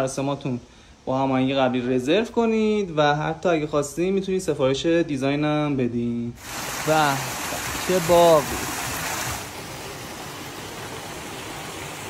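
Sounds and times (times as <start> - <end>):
water rushing down a cascade: 6.4 - 12.0.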